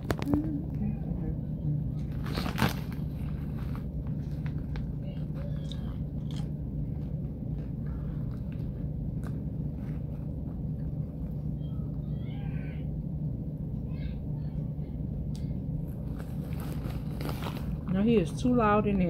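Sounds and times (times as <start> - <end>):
steady low rumble: 0.0 - 19.0
crunchy chewing clicks: 4.2 - 11.7
faint wavering high-pitched cry: 11.6 - 13.0.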